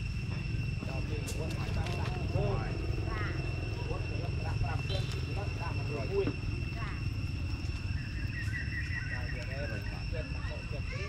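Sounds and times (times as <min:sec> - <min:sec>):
high insect drone: 0:00.0 - 0:11.0
short chirping calls: 0:07.2 - 0:10.7.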